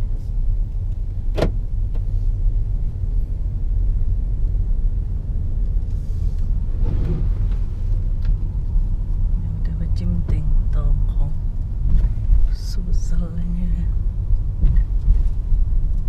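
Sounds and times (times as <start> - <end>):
car engine and tyre noise: 0.0 - 16.0.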